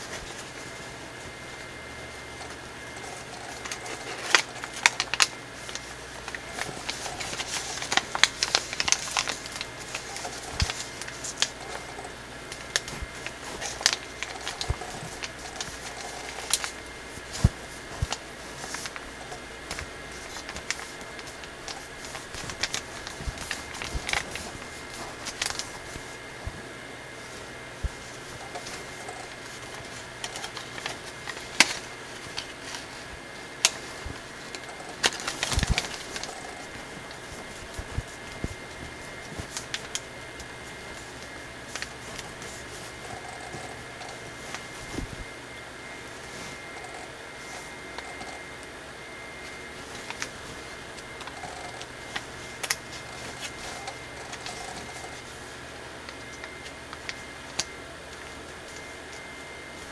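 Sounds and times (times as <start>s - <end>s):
foil paper crinkling: 0.0s - 59.9s.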